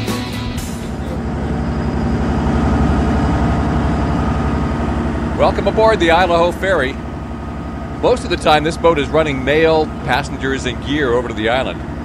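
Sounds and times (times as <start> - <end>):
ship engine low rumble: 0.5 - 12.0.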